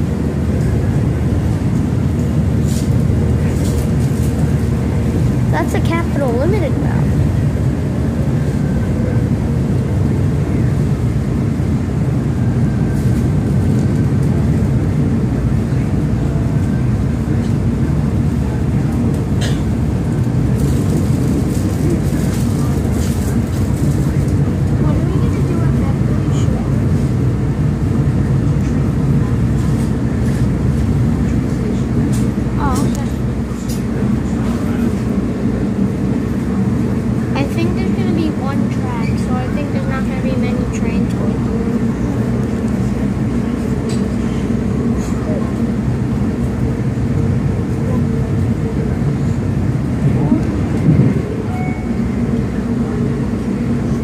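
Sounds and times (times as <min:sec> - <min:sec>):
faint passenger voices: 0:00.0 - 0:54.0
train rumble from inside: 0:00.0 - 0:54.0.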